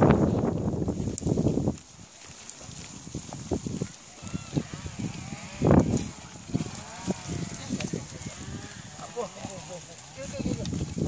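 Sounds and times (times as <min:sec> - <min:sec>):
sheep bleating: 0:03.8 - 0:10.4.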